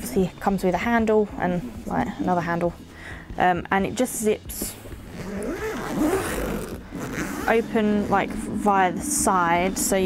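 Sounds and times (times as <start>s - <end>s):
suitcase zip pulled open: 5.0s - 8.1s.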